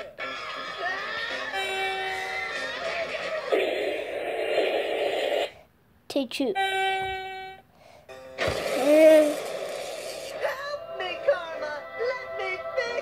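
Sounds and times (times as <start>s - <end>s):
noisy burst: 3.5s - 5.6s, 8.4s - 10.8s.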